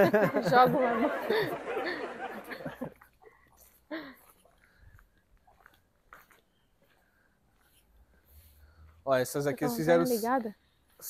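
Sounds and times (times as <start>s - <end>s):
footsteps on concrete and debris: 3.6s - 7.8s.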